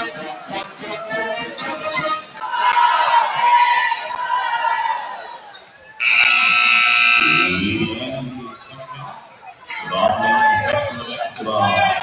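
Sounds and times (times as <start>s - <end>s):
scoreboard buzzer: 6.0s - 7.7s.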